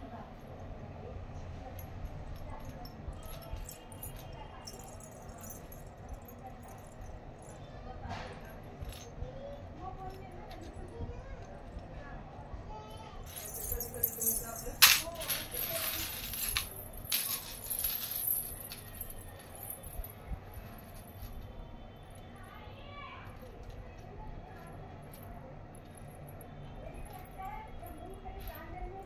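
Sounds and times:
small bells jingling: 1.8s - 7.7s, 13.3s - 22.3s
sharp metal clink: 13.4s - 18.9s.

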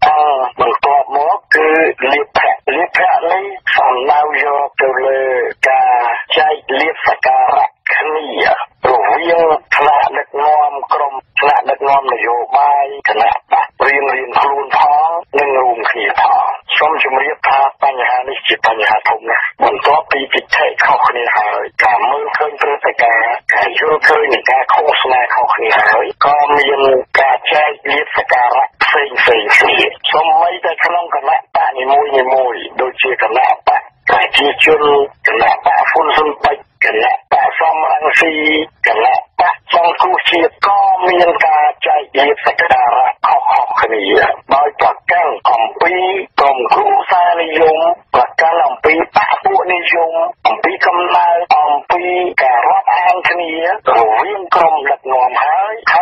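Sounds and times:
person reading news on radio: 0.0s - 56.0s.

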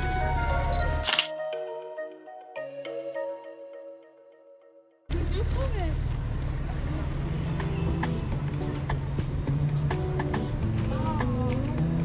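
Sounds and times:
street noise: 0.0s - 1.3s, 5.1s - 12.0s
background music: 0.0s - 5.9s, 6.8s - 12.0s
camera shutter click: 1.0s - 1.3s.

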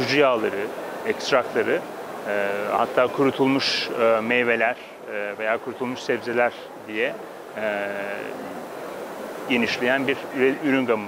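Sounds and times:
man speaking hesitantly: 2.3s - 8.6s.

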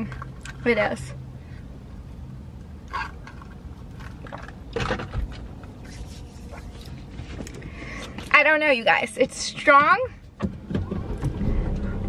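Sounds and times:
car cabin hum: 4.0s - 12.0s.

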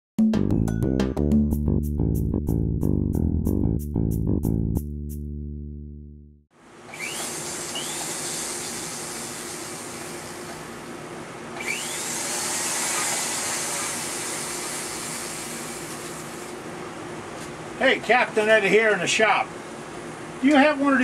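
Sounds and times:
flex-shaft grinder running: 6.9s - 10.9s, 11.6s - 16.6s.

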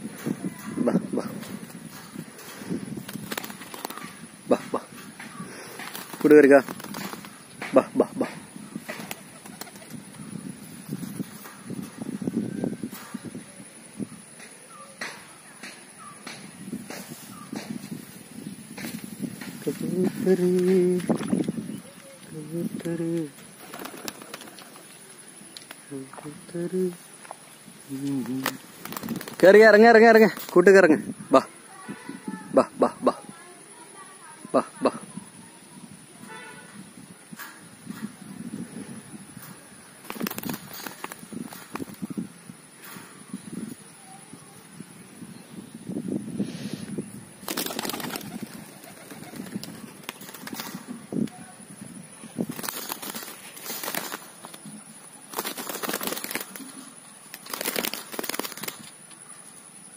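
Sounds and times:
pigeon wings flapping: 0.2s - 10.4s, 18.8s - 21.6s, 22.6s - 25.9s, 28.0s - 30.8s, 40.0s - 42.2s, 47.4s - 51.4s, 52.4s - 59.0s
faint clicks: 25.5s - 25.8s.

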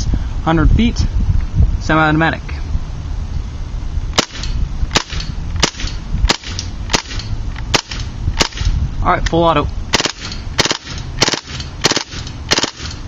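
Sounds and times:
airsoft gun shots: 4.2s - 8.8s, 9.9s - 13.0s.

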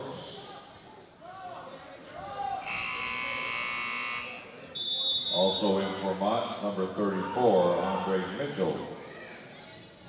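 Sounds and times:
scoreboard horn buzz: 2.6s - 4.5s.

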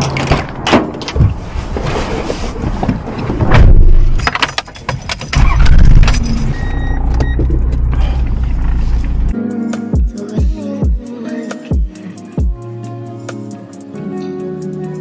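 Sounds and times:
diesel engine starting and idling: 5.2s - 9.3s
background music: 9.3s - 15.0s.

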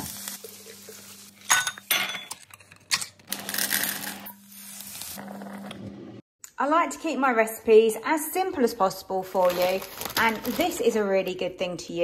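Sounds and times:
sausages sizzling in a frying pan: 0.0s - 1.5s.

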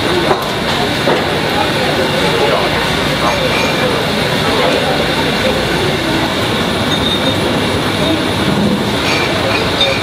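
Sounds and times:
faint voices: 0.0s - 10.0s
loud rumbling noise: 0.0s - 10.0s.

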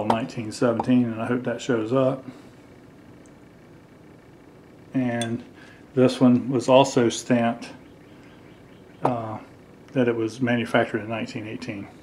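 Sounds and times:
man speaking: 5.0s - 7.8s, 9.0s - 11.9s.

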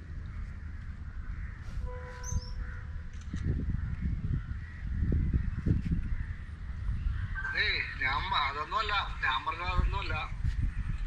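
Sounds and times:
wind rumbling on microphone: 0.0s - 11.0s
birds chirping: 0.1s - 11.0s.

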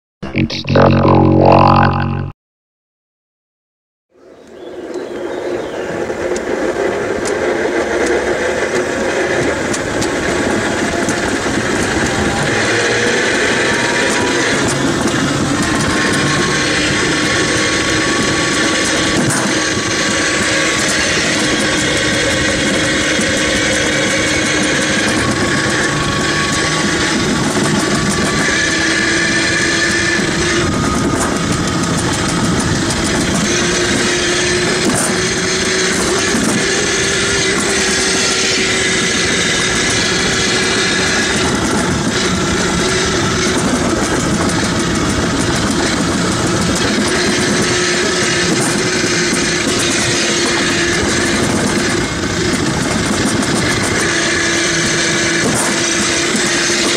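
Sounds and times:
sled rolling rumble on metal track: 5.6s - 56.9s.

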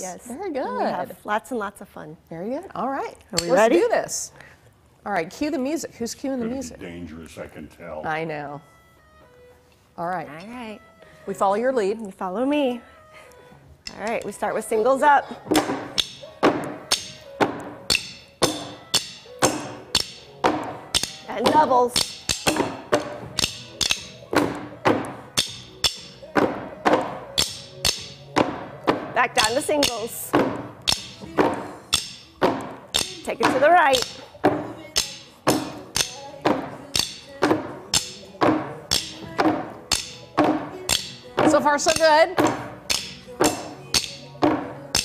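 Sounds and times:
backing music track: 5.9s - 45.0s
drumming with sticks on crates: 15.4s - 45.0s.

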